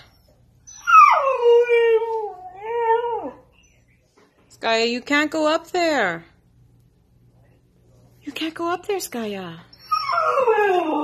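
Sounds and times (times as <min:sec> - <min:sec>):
dog howling: 0:00.7 - 0:03.5, 0:09.9 - 0:11.0.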